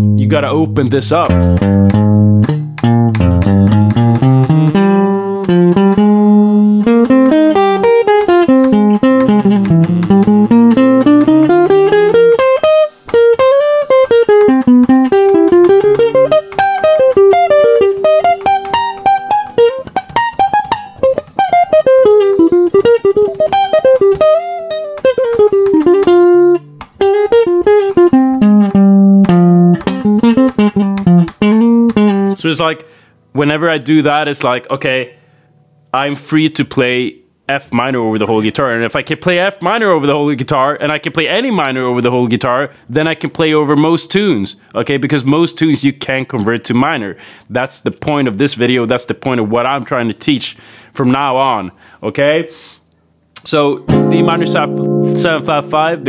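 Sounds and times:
jazz guitar improvising: 0.0s - 34.2s, 53.4s - 56.0s.

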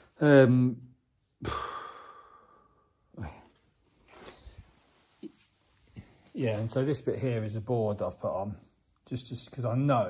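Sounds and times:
man sighing: 1.4s - 3.6s.

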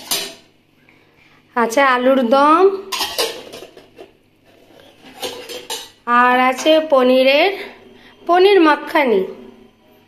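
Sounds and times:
steel cookware clinking: 0.0s - 0.5s, 2.9s - 6.0s.

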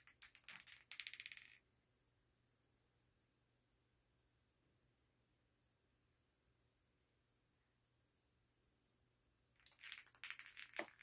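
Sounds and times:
metal bowl rattling on concrete: 9.6s - 11.0s.

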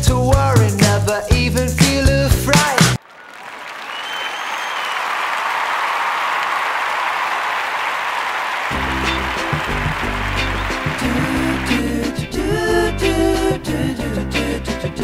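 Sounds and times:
audience applause: 3.0s - 12.1s
music with low bass notes: 8.8s - 15.0s.

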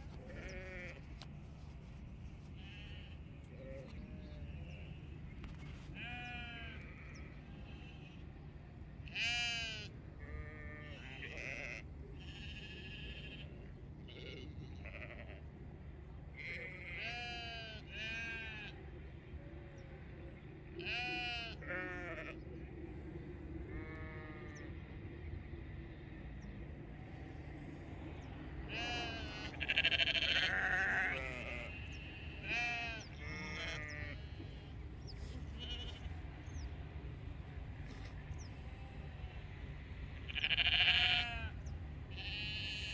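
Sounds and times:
sheep bleating: 0.2s - 1.2s, 2.6s - 5.0s, 6.0s - 8.2s, 9.0s - 13.5s, 14.1s - 15.4s, 16.4s - 18.8s, 20.8s - 22.4s, 28.7s - 36.6s, 40.3s - 42.9s.

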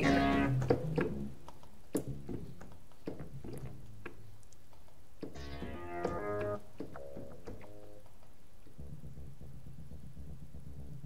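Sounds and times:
low synth bass notes: 0.0s - 1.4s, 5.4s - 8.0s.

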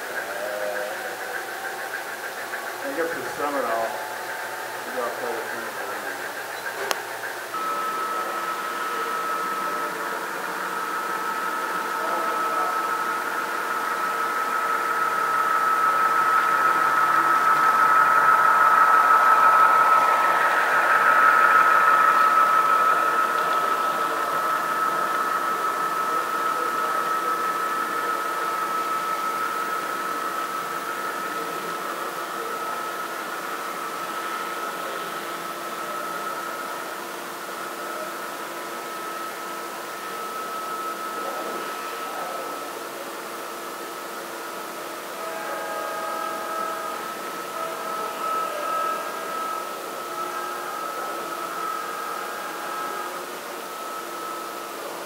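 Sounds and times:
model train rolling past: 0.0s - 43.8s
high whine: 0.0s - 55.0s.

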